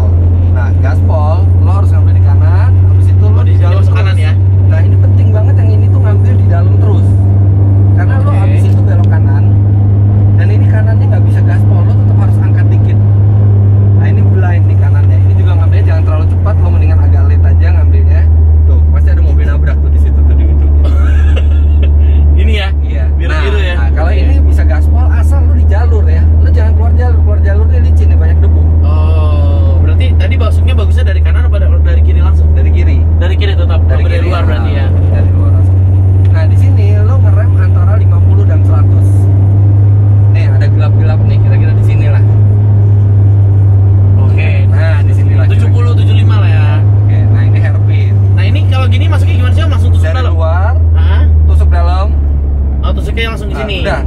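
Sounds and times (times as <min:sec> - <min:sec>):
car engine droning: 0:00.0 - 0:54.0.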